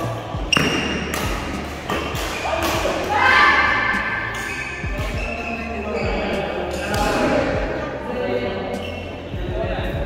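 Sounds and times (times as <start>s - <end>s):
echoing murmur of voices: 0.0s - 10.0s.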